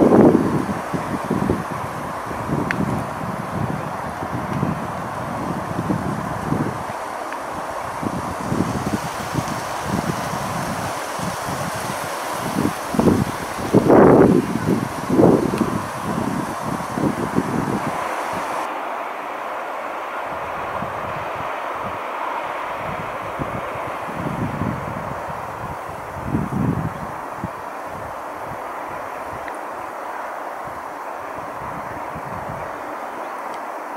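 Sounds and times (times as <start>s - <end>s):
wind buffeting microphone: 0.0s - 18.7s, 20.3s - 22.0s, 22.6s - 29.5s, 30.6s - 32.9s.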